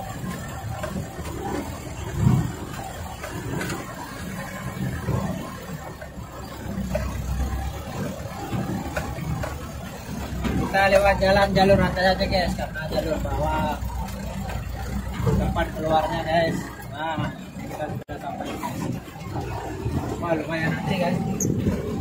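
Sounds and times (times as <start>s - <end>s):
truck engine running: 0.0s - 22.0s.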